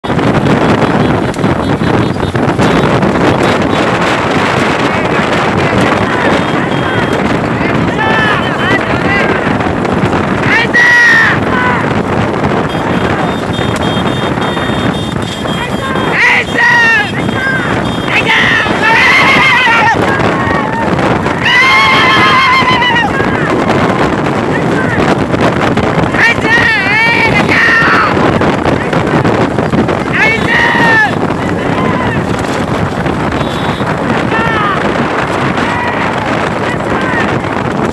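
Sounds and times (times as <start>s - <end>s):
motorcycle engine: 0.0s - 26.2s, 27.7s - 37.9s
horse cart racing: 0.0s - 37.9s
wind rushing over microphone: 0.0s - 37.9s.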